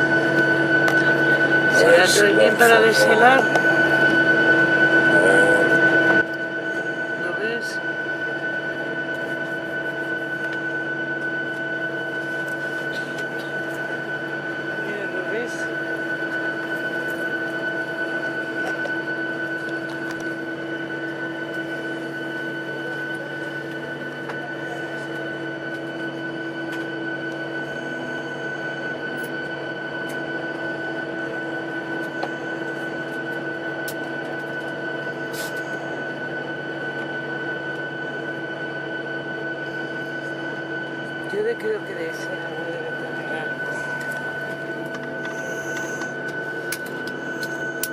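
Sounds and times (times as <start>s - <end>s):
mechanical drone with high whine: 0.0s - 47.9s.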